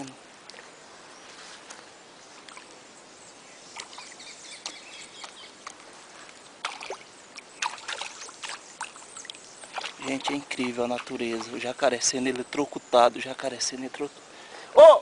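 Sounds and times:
shallow water lapping: 3.6 - 12.1.

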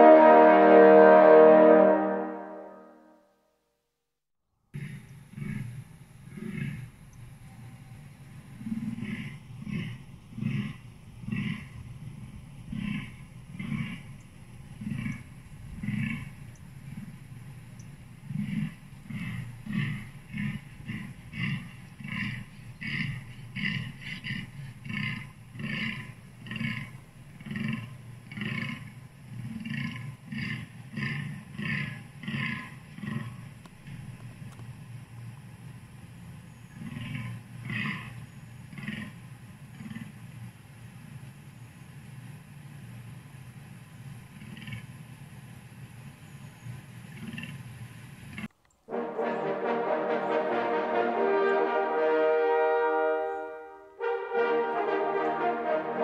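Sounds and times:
deer groaning calls: 18.2 - 33.5.

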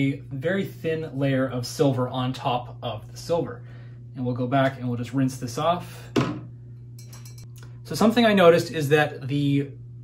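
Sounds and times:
steady low hum: 0.0 - 10.0
metal clinking in water beaker: 6.8 - 7.5.

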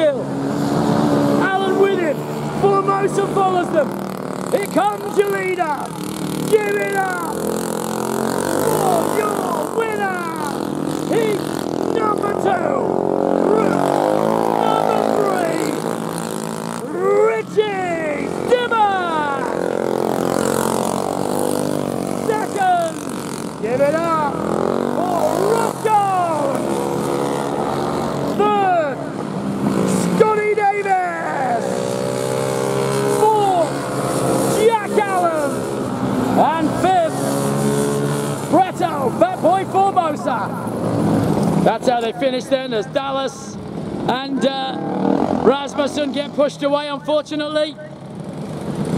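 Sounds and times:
small racing engines revving: 0.0 - 48.9.

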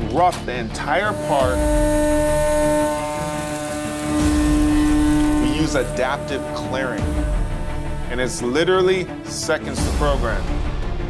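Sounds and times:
milling machine cutting whine: 0.8 - 10.6
low machine rumble: 0.9 - 9.3.

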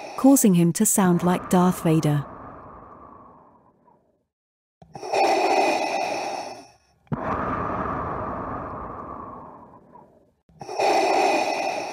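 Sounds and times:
respirator breathing through mask: 4.9 - 11.9.

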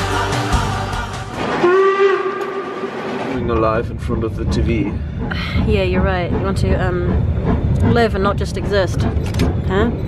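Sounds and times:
steam locomotive whistle: 1.5 - 2.9.

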